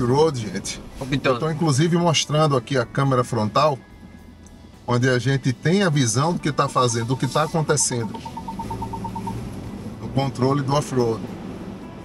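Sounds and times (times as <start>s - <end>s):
vehicle engine drone: 6.1s - 12.0s
rapid electronic beeping: 6.9s - 9.4s.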